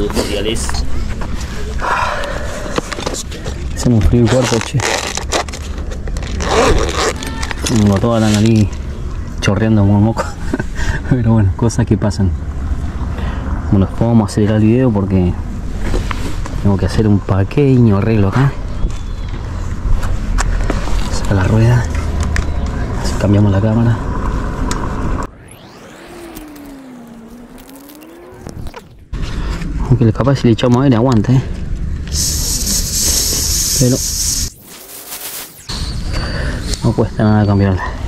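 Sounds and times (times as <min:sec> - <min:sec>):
air hissing into bicycle tyre: 0:32.1 - 0:36.7.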